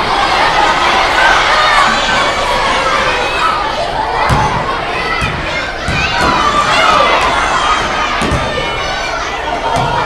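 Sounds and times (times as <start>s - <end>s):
children shouting and cheering: 0.0s - 10.0s.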